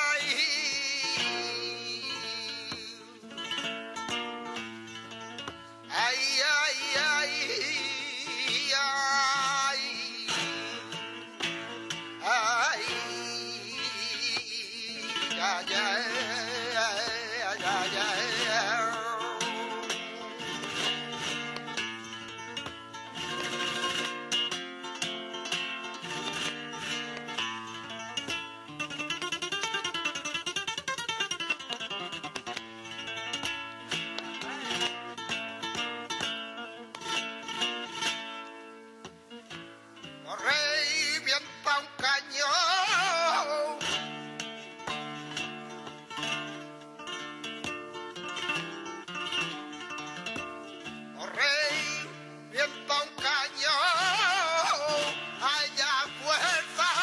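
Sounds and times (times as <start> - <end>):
flamenco guitar playing: 0.0 - 57.0
man singing flamenco: 0.0 - 57.0.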